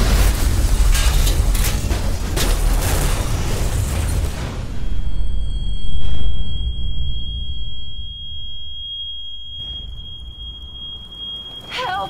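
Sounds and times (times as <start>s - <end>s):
low explosion rumble: 0.0s - 11.6s
high-pitched ringing tone: 4.7s - 12.0s.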